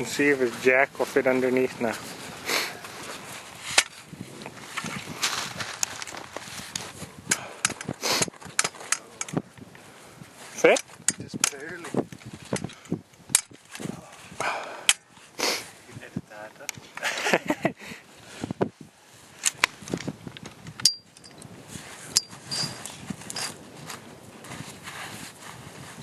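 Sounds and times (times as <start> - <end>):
footsteps crunching snow: 1.8 - 7.1, 21.7 - 26.0
metal jack clicks and knocks: 7.3 - 9.4, 10.7 - 13.8, 19.4 - 21.4.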